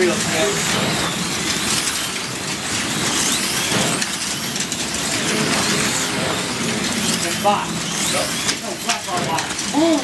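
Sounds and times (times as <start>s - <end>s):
cars running in slots: 0.0s - 10.0s
slot car motors whining: 0.0s - 10.0s.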